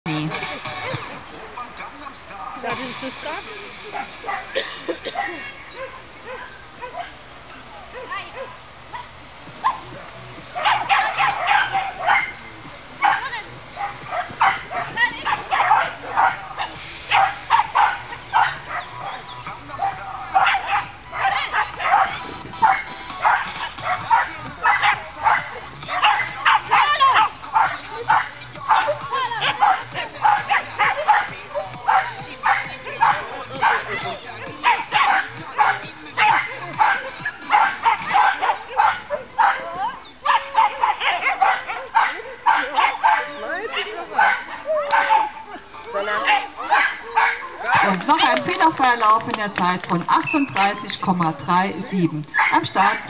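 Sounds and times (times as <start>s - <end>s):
small dog barking rapidly: 9.6s - 9.9s, 10.6s - 12.4s, 13.0s - 45.4s, 46.2s - 48.8s, 52.3s - 53.0s.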